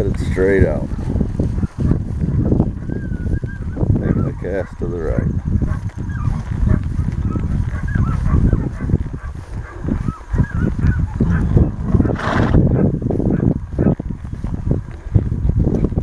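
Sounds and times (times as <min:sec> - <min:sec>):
footsteps through tall grass: 0:00.0 - 0:16.0.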